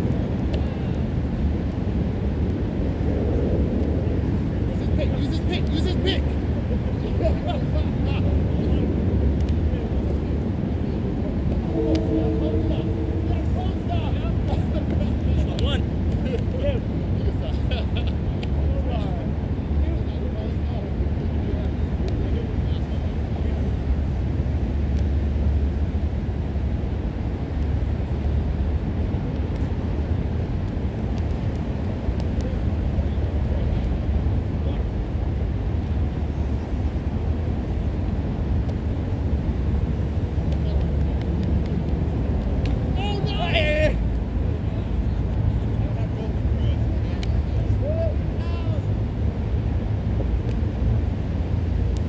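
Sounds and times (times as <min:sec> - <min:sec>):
low outdoor rumble: 0:00.0 - 0:52.0
faint voices of players: 0:09.7 - 0:15.8.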